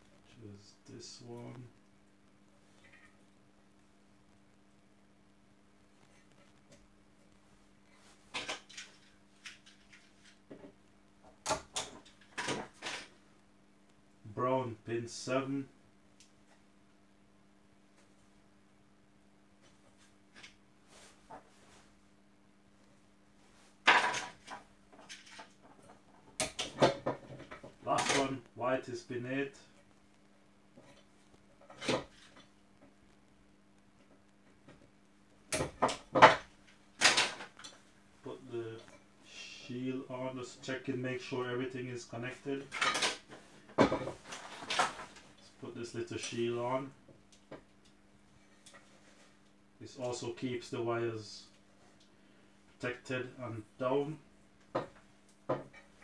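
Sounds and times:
tools clattering on workbench: 0:23.9 - 0:25.5, 0:42.7 - 0:45.2
plastic parts scraping and clicking: 0:42.6 - 0:45.4.

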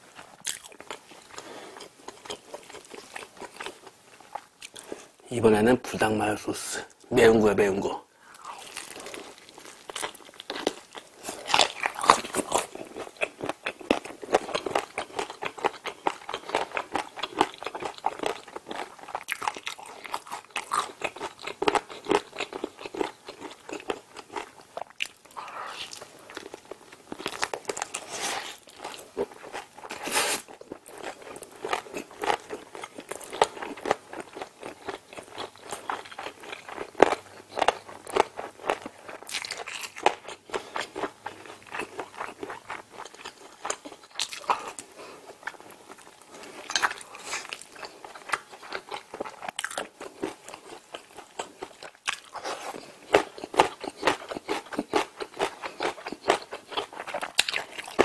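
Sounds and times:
crunchy chewing of fried chicken: 0:00.0 - 0:05.2, 0:08.2 - 0:58.0.

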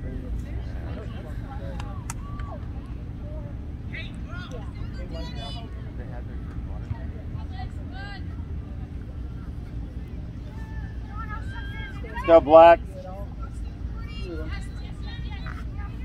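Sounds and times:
distant people shouting: 0:01.8 - 0:03.2, 0:10.4 - 0:16.0.

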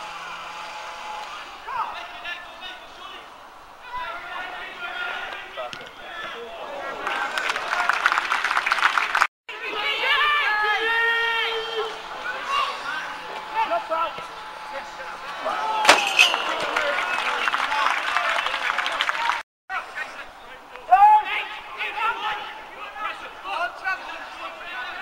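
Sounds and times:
players and spectators shouting: 0:00.0 - 0:07.9, 0:09.5 - 0:25.0.

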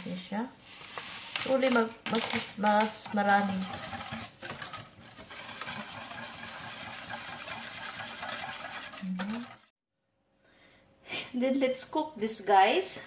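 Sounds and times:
whisk scraping a steel saucepan: 0:03.0 - 0:09.7.

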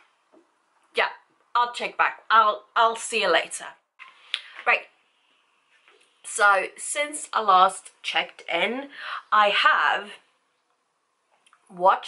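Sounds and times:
woman speaking: 0:01.0 - 0:03.8, 0:04.6 - 0:04.9, 0:06.3 - 0:10.2, 0:11.7 - 0:12.0.

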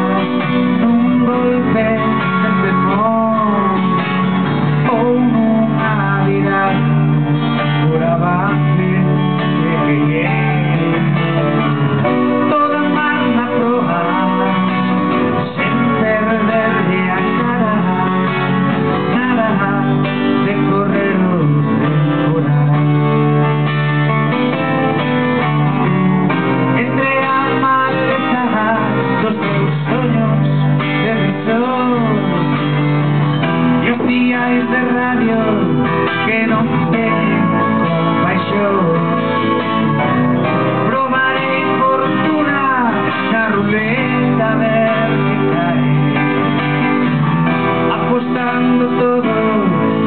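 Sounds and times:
acoustic guitar: 0:00.0 - 0:50.0
man singing: 0:00.0 - 0:50.0.

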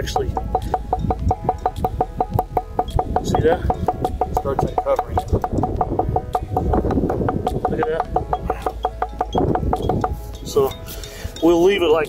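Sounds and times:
chisel tapping on stone: 0:00.0 - 0:10.8.

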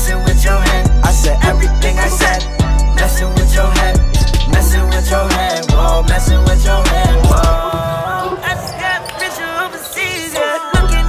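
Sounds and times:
sneakers squeaking on floor: 0:07.0 - 0:10.7.

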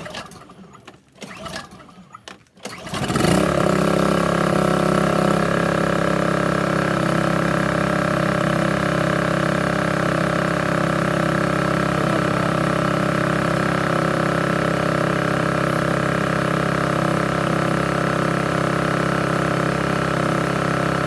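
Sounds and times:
generator pull-start: 0:00.0 - 0:21.0
generator running: 0:00.0 - 0:21.0.

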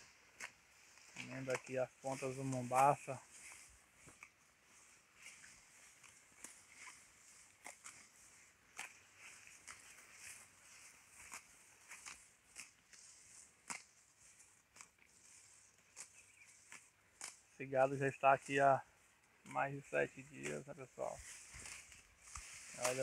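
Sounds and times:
cattle tearing and chewing grass: 0:00.0 - 0:23.0.

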